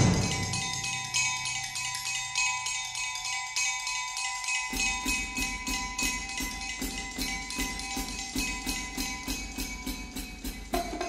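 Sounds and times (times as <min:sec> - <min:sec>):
bell-like ringing tones: 0:00.0 - 0:11.0
quick metallic percussion strokes: 0:00.0 - 0:11.0.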